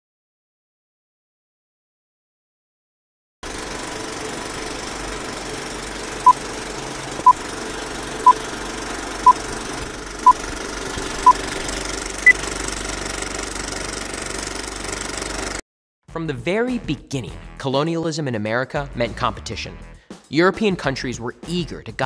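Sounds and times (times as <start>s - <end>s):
film projector rattle and hiss: 3.4s - 15.6s.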